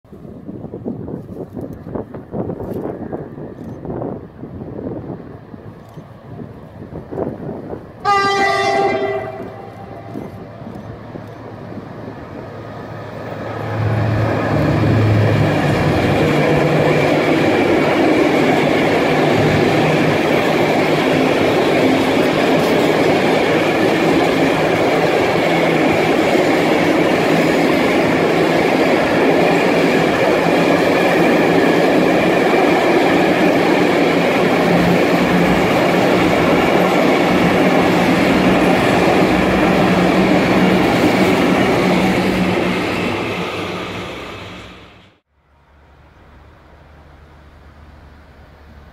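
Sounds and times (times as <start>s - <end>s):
diesel locomotive engine: 0.1s - 48.9s
train wheels on rails: 0.1s - 48.9s.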